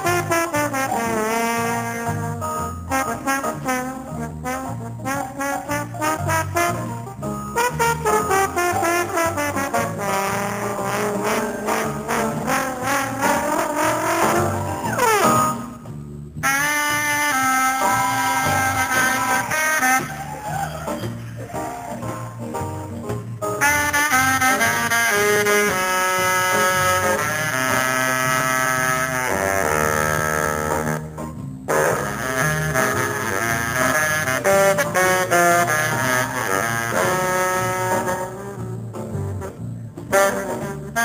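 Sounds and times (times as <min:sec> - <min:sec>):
bass and drums: 0:00.0 - 0:41.0
blues band with horns: 0:00.0 - 0:41.0.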